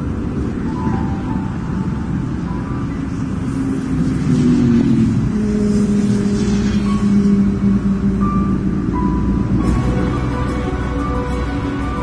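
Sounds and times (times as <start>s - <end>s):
engine and tyre hum: 0.0s - 12.0s
motorway traffic rumble: 0.0s - 12.0s.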